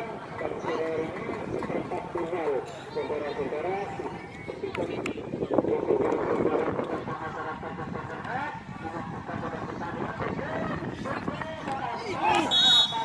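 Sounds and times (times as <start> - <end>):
crowd calling and shouting: 0.0 - 13.0
shrill referee's whistle: 12.5 - 13.0.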